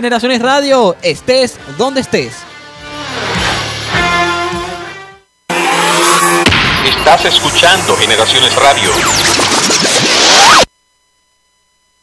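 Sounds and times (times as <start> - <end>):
whooshing sweep with rising tone: 2.9 - 4.0.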